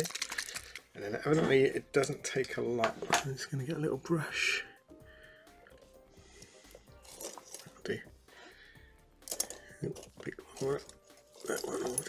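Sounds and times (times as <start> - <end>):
paintbrush handles rattling in pot: 0.0 - 3.3, 7.0 - 8.0, 9.2 - 12.0.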